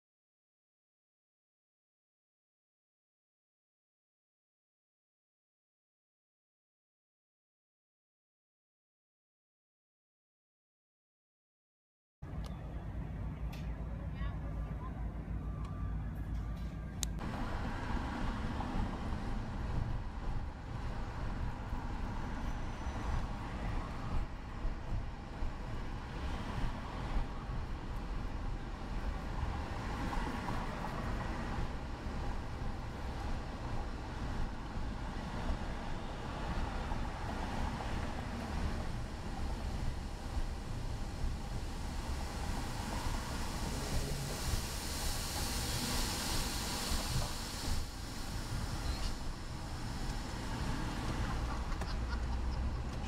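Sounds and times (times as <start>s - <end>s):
car road and engine rumble: 12.2s - 53.0s
loud hiss: 38.9s - 51.8s.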